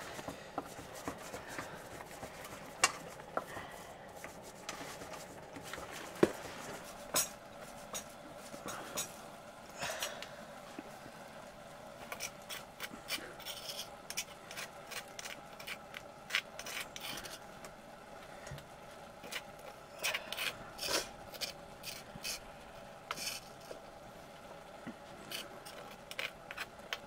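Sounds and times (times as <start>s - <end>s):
metal utensil scraping stone: 12.1s - 17.4s, 25.3s - 27.0s
stone grinding on stone: 12.1s - 17.4s, 20.1s - 22.4s, 25.3s - 27.0s.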